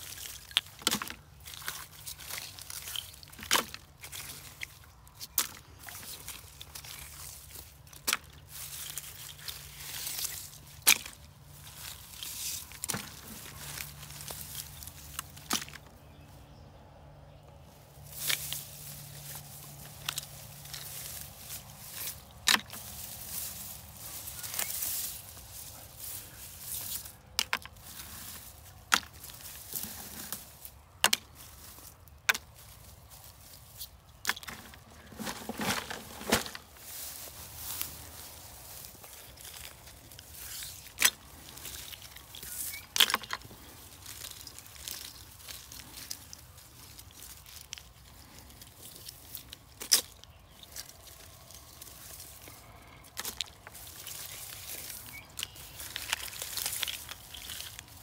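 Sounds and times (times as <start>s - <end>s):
rustling grass and plastic litter: 0.0s - 58.0s.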